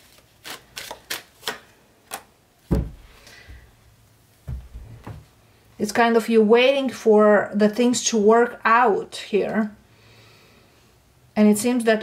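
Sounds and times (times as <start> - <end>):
card thumping down: 2.7 - 3.1.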